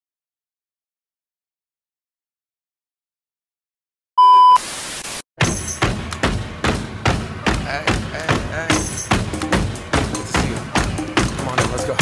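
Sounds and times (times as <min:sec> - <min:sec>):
loud electronic beep: 0:04.2 - 0:04.7
static-like hiss: 0:04.6 - 0:05.2
steady thumps: 0:05.4 - 0:12.0.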